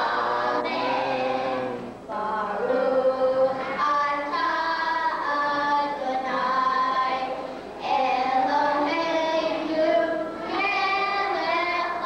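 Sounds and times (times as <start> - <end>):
boys singing into a microphone: 0.0 - 12.0.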